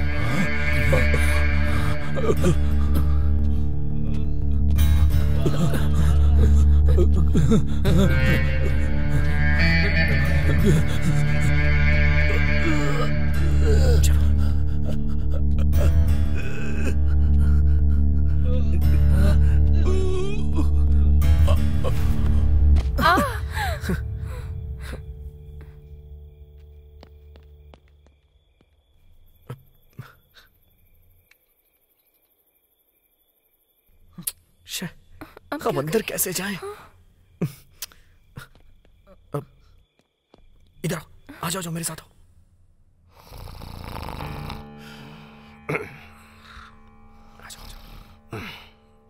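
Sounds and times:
low film score drone: 0:00.0 - 0:22.9
soft background music: 0:00.0 - 0:26.4, 0:43.8 - 0:49.0
person crying out: 0:23.0 - 0:24.0
man snoring: 0:43.1 - 0:46.2.

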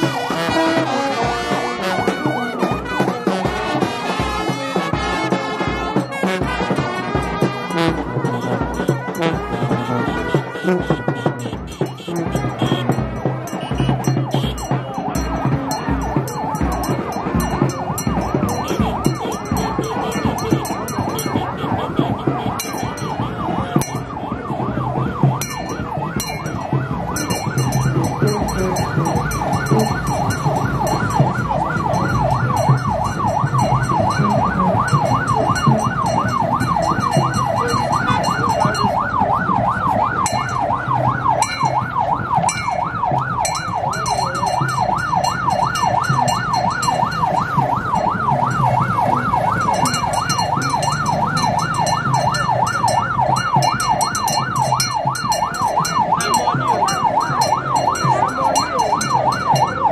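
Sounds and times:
vehicle siren yelping: 0:00.0 - 0:59.9.

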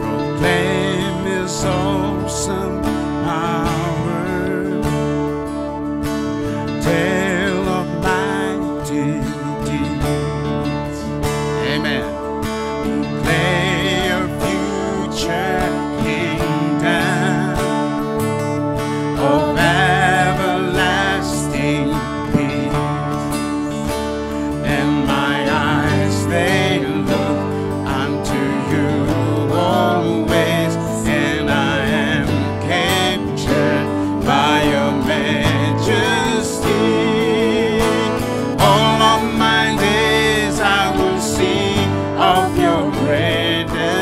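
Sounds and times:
electric bass: 0:00.0 - 0:44.0
strummed acoustic guitar: 0:00.0 - 0:44.0
voices singing with vibrato: 0:12.8 - 0:44.0.

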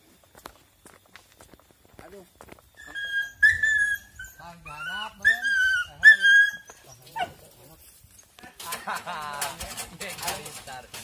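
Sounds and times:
voices: 0:02.0 - 0:11.0
dogs whining: 0:02.8 - 0:07.4.

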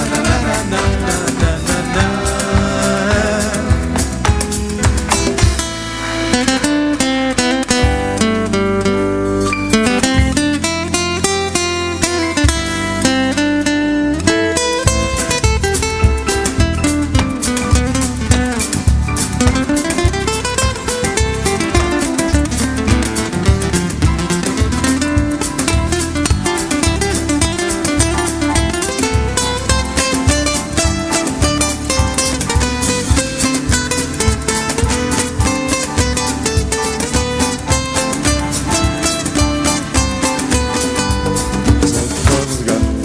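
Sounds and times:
acoustic guitar: 0:00.0 - 0:43.0
bass drums and percussion: 0:00.0 - 0:43.0.

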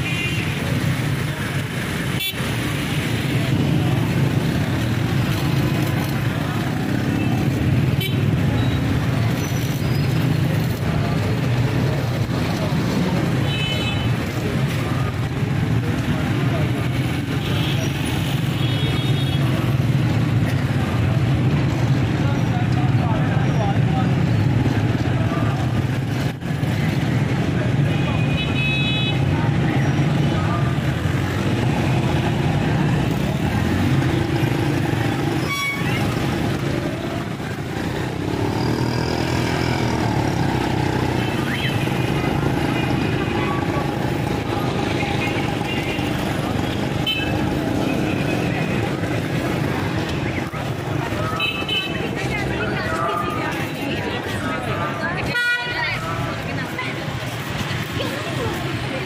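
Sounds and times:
crowd voices: 0:00.0 - 0:59.0
motorcycle and car engines: 0:00.0 - 0:59.0.

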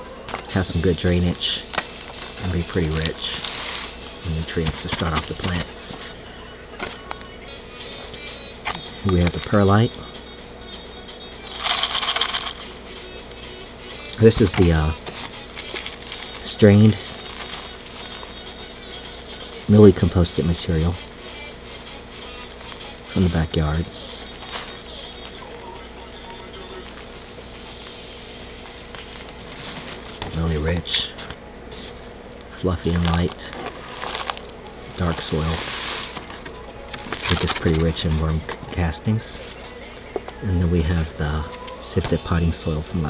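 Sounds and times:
background hiss and hum: 0:00.0 - 0:43.0
compost trickling rustle: 0:01.9 - 0:04.0, 0:32.8 - 0:36.3
granules rattling in plastic bottle: 0:11.5 - 0:12.6, 0:14.3 - 0:20.0, 0:36.1 - 0:38.4.

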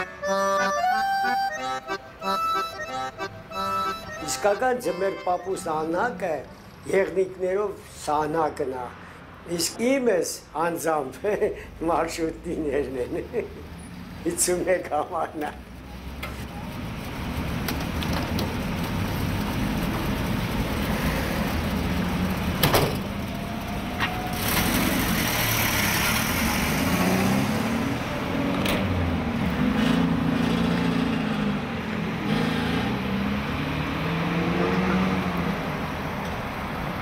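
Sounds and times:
minibus engine pulling away: 0:00.0 - 0:06.2, 0:15.6 - 0:37.0
city street traffic: 0:00.0 - 0:37.0.

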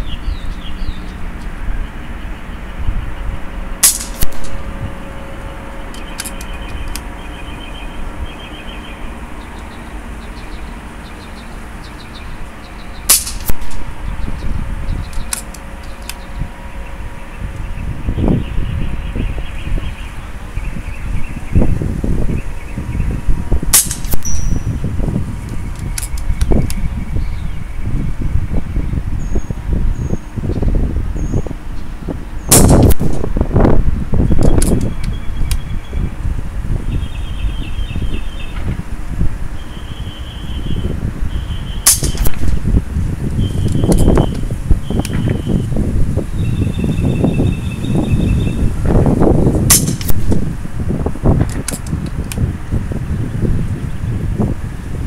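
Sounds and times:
air rifle shots: 0:03.8 - 0:04.8, 0:13.0 - 0:14.1, 0:23.7 - 0:24.6, 0:32.5 - 0:33.3, 0:41.8 - 0:42.7, 0:49.7 - 0:50.4.

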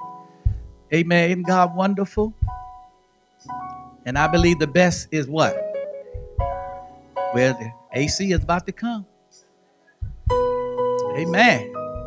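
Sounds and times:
band playing held chord: 0:11.0 - 0:11.8.

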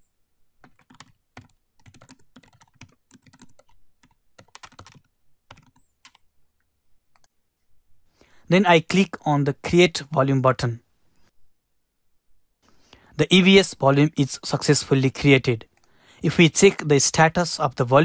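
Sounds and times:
computer keyboard typing: 0:00.6 - 0:06.3, 0:07.1 - 0:07.3.

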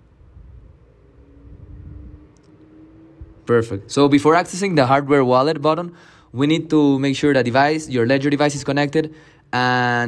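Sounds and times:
low background rumble: 0:00.0 - 0:08.5
faint steady hum: 0:00.0 - 0:10.0.

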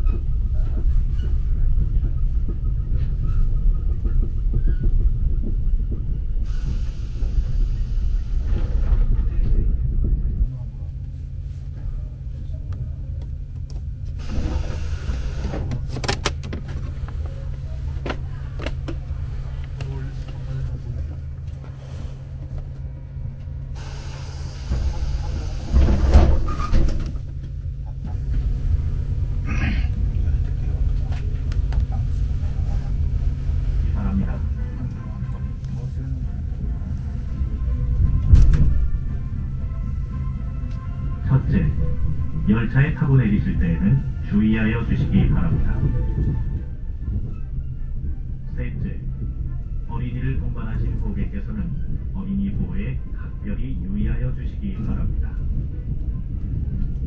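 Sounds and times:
train running rumble: 0:00.0 - 0:57.0.

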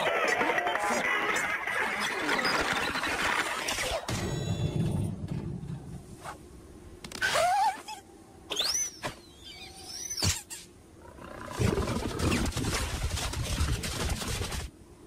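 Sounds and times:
cartoon clatter effects: 0:11.6 - 0:14.7.

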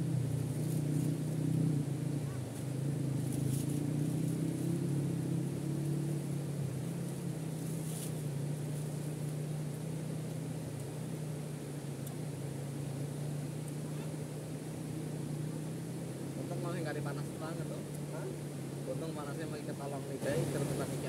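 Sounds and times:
steady low drone: 0:00.0 - 0:21.0.

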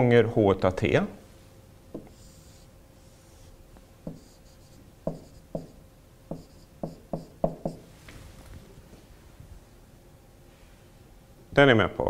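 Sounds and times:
marker tapping on whiteboard: 0:01.9 - 0:02.2, 0:04.0 - 0:07.9
marker squeaking: 0:02.0 - 0:03.5, 0:04.1 - 0:07.8.

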